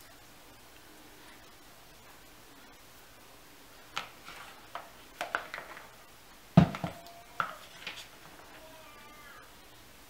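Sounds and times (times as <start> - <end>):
hard objects knocking: 6.6 - 8.0.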